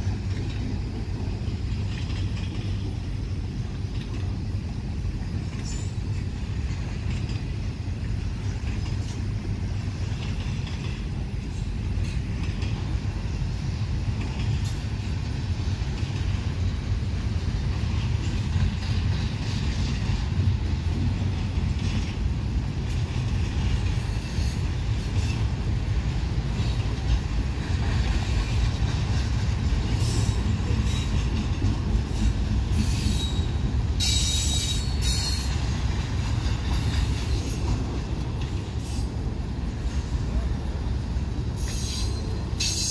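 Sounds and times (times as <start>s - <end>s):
train wheels rumbling on rail: 0.0s - 42.9s.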